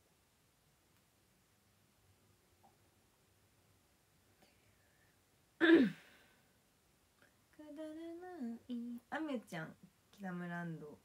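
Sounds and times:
woman humming: 7.6 - 9.1.

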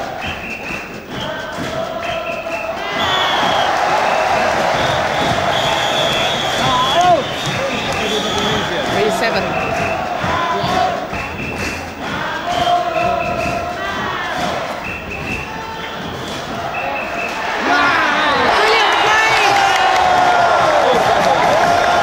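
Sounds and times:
sharp claps or bangs: 0.0 - 17.8, 18.4 - 22.0
crowd cheering and shouting: 0.0 - 22.0
shrill whistle-like tones: 0.0 - 22.0.

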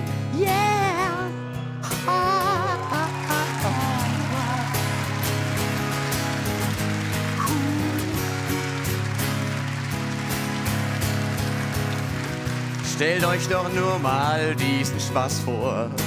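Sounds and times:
acoustic guitar strumming: 0.0 - 16.0.

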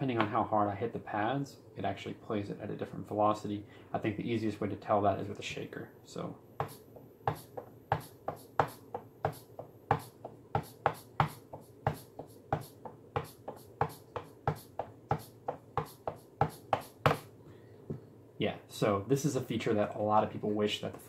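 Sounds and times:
shaker hits: 6.6 - 17.3.

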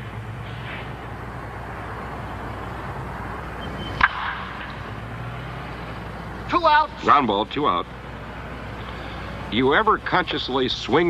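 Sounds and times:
low hum and hiss: 0.0 - 11.0
bat hitting baseball: 4.0 - 4.9.

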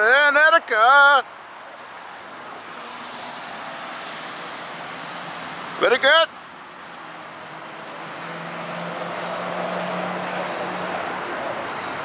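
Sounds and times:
car driving past: 7.0 - 12.0.

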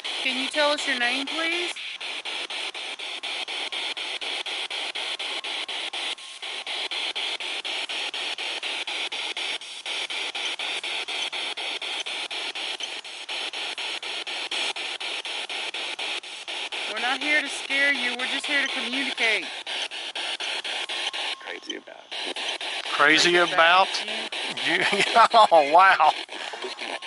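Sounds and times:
radio static hiss with cuts: 0.0 - 27.0.

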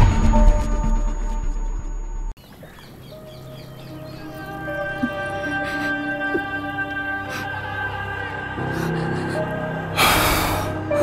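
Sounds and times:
birds chirping: 2.4 - 9.7.

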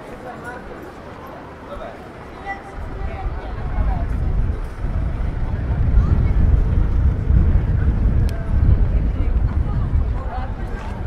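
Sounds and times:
passers-by talking faintly: 0.0 - 11.0
loud low rumble: 2.8 - 11.0.

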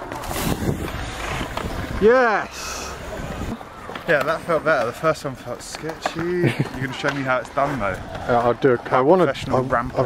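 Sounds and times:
wind on microphone: 0.0 - 2.0
bike tyres rolling on concrete: 0.0 - 10.0.

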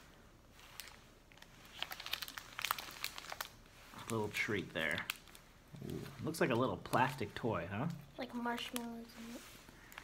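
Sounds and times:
foil wrapper crinkling: 0.5 - 10.0.

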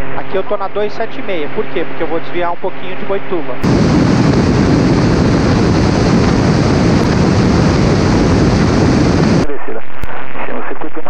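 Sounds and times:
aircraft cabin sound: 3.6 - 9.5
wind rushing over microphone: 3.6 - 9.5.

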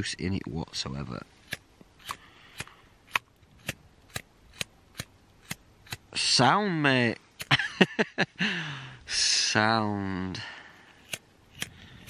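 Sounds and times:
lighter flint wheel clicking: 11.0 - 12.0.

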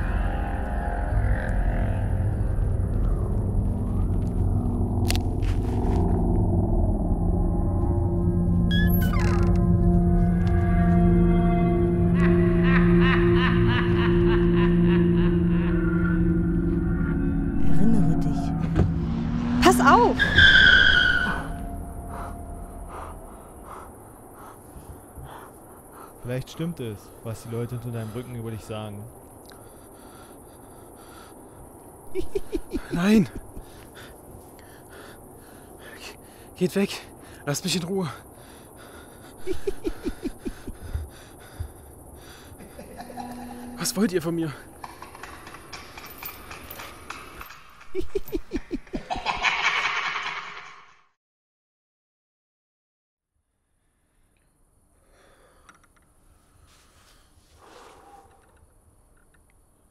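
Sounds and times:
car tyres squealing: 20.2 - 21.8
staccato laughter falling in pitch: 32.1 - 33.7, 39.4 - 40.9, 42.6 - 43.7, 47.9 - 50.8.

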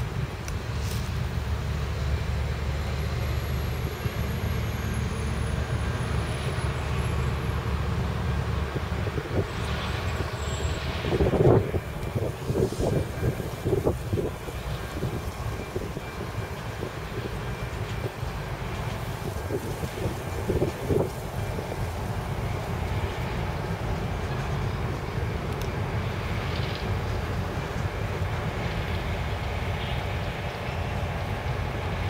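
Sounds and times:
diesel locomotive engine drone: 0.0 - 32.0
train clanks and knocks: 0.0 - 32.0.

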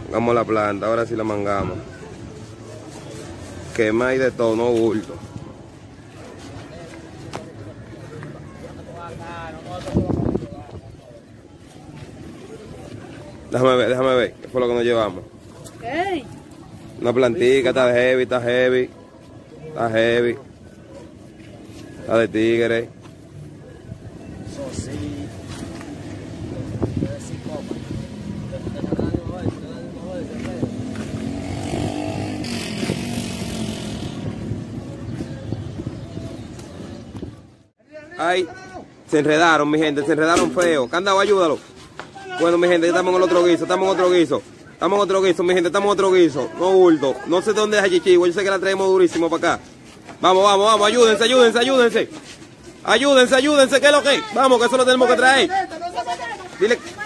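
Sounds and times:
distant people talking: 0.0 - 57.0
outdoor background noise: 0.0 - 57.0
vehicle engine passing: 26.0 - 35.0.

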